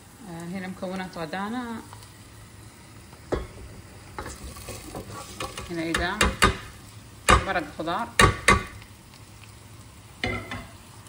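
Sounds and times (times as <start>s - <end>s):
steady sizzle: 0.0s - 11.0s
spatula knocking against pot: 5.9s - 6.7s, 8.2s - 8.8s.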